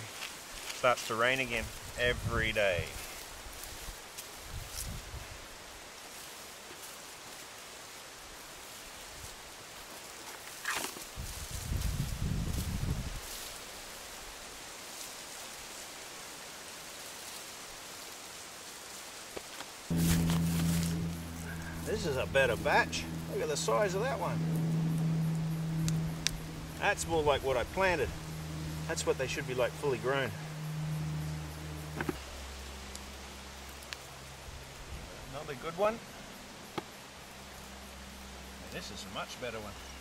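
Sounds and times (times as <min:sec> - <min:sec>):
steady low hum: 0:19.9 - 0:40.0.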